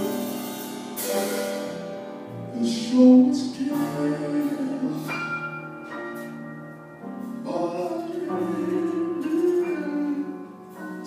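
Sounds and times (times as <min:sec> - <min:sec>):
piano chords: 0:00.0 - 0:11.0
man singing: 0:02.5 - 0:05.3, 0:07.4 - 0:11.0.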